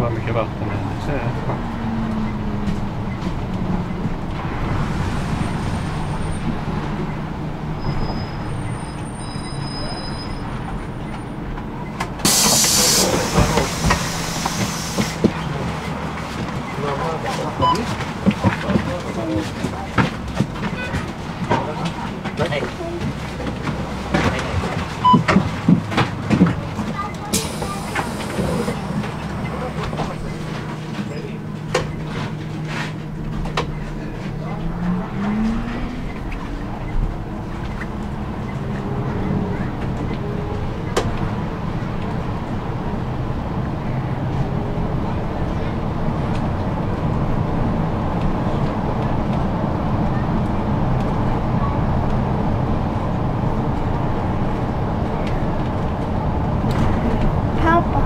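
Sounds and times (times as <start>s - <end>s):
bus engine humming: 0.0s - 58.0s
road noise: 0.0s - 58.0s
air brake hiss: 12.2s - 15.2s, 27.3s - 29.0s.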